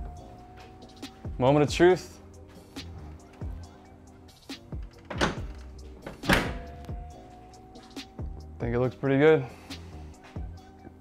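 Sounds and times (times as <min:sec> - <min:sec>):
music with a beat: 0:00.0 - 0:09.0, 0:09.6 - 0:11.0.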